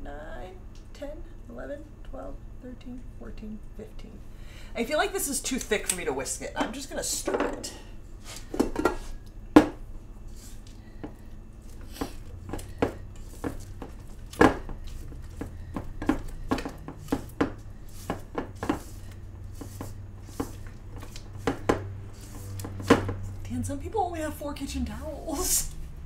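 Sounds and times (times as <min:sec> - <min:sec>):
spatula scraping metal bowl: 0:14.7 - 0:23.4.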